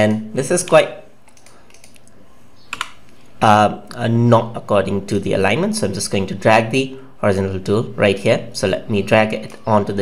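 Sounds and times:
computer keyboard key clicks: 0:01.3 - 0:02.1, 0:02.7 - 0:03.0.

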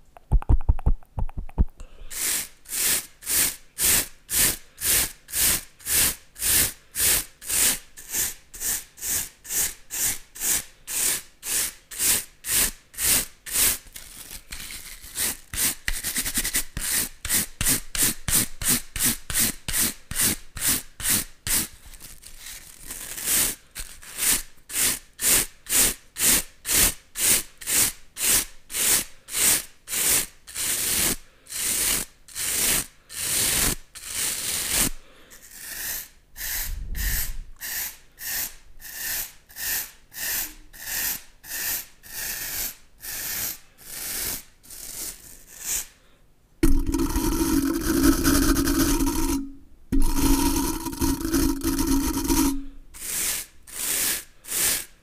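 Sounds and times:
bristle brushes scratching: 0:46.6 - 0:54.2.

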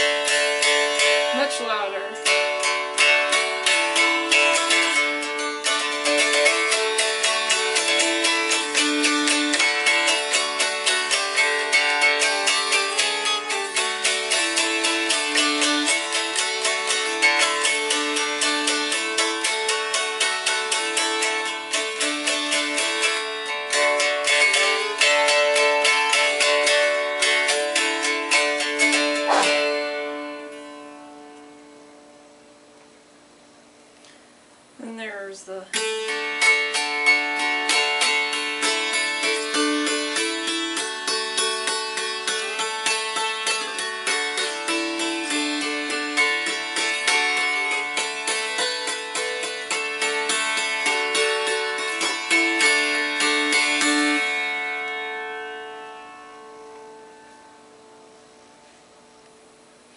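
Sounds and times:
mountain dulcimer strummed: 0:00.0 - 0:32.9, 0:34.8 - 0:59.7.

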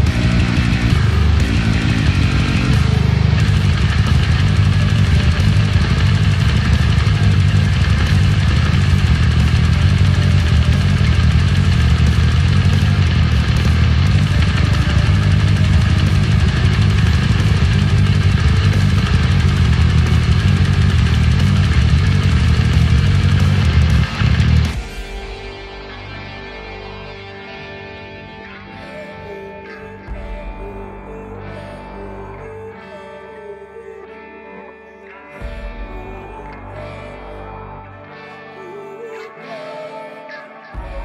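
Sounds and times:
electric bass playing metal: 0:00.0 - 0:41.0.

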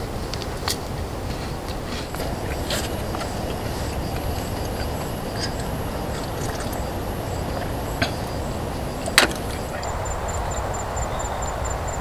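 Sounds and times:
faint high insect tone: 0:00.0 - 0:12.0
steady low rumble: 0:00.0 - 0:12.0.

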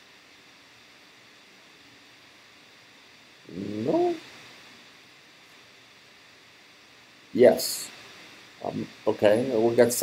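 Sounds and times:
faint room hiss: 0:00.0 - 0:10.0
person speaking: 0:03.5 - 0:04.3.

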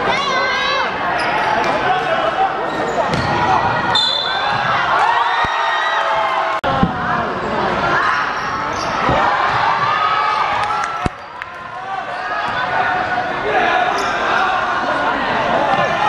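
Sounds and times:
players shouting: 0:00.0 - 0:16.0.

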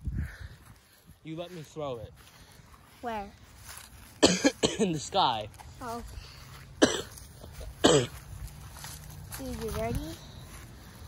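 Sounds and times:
person coughing: 0:04.2 - 0:05.0, 0:06.8 - 0:08.2.

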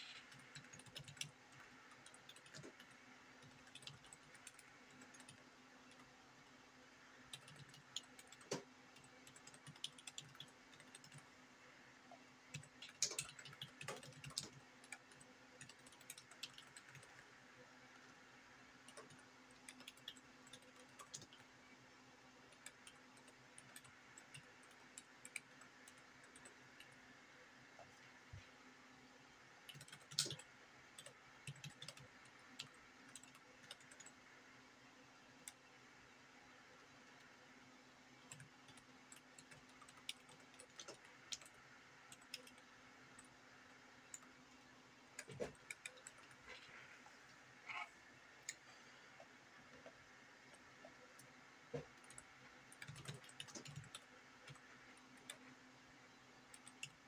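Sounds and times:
typing on computer keyboard: 0:00.0 - 0:06.2, 0:07.2 - 0:11.3, 0:12.5 - 0:17.4, 0:18.8 - 0:21.6, 0:22.4 - 0:27.0, 0:29.6 - 0:34.2, 0:38.2 - 0:43.4, 0:45.2 - 0:46.7, 0:49.7 - 0:55.6, 0:56.4 - 0:57.0
low electrical hum: 0:00.0 - 0:57.0.

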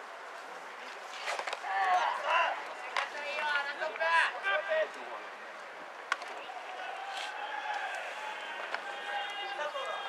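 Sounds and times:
crowd noise: 0:00.0 - 0:10.0
voices calling out: 0:06.1 - 0:10.0.

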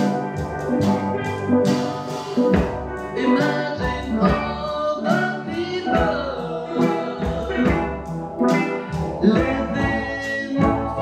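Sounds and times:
bass pan notes: 0:00.0 - 0:11.0
steel pan ensemble playing: 0:00.0 - 0:11.0.

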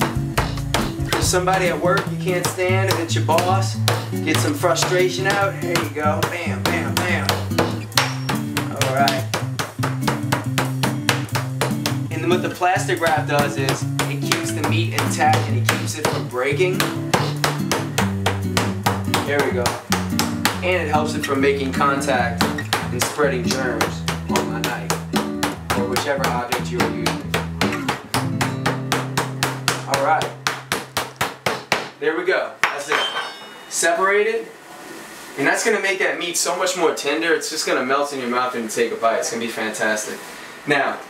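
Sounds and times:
music with quick beat and bass: 0:00.0 - 0:31.7.

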